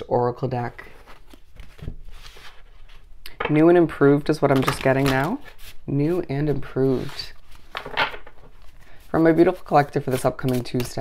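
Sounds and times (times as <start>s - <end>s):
cards shuffling: 4.3s - 5.8s, 6.8s - 11.0s.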